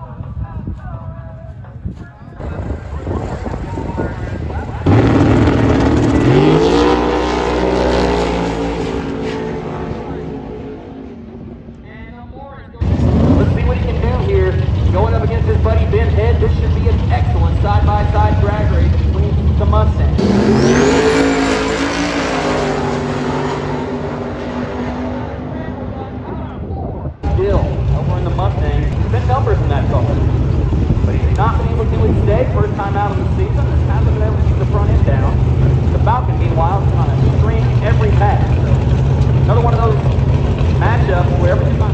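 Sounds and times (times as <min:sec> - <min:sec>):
cars idling: 0:02.8 - 0:12.2, 0:12.8 - 0:26.6, 0:27.2 - 0:41.9
race cars launching at full throttle: 0:04.4 - 0:11.8, 0:12.8 - 0:41.9.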